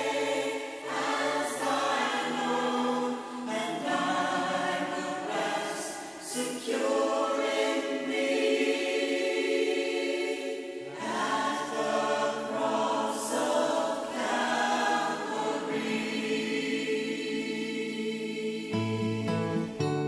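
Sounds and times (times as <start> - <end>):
wordless choir chords: 0.0 - 18.9.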